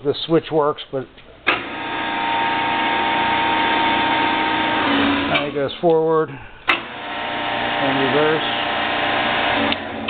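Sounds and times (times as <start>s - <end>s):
lathe motor humming: 1.5s - 5.6s, 6.7s - 10.0s.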